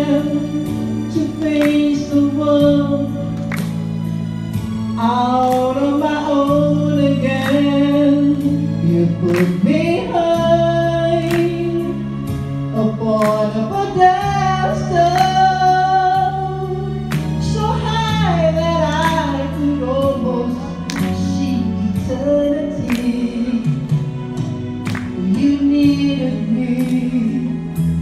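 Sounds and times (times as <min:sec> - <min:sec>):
woman singing pop ballad: 0:00.0 - 0:28.0.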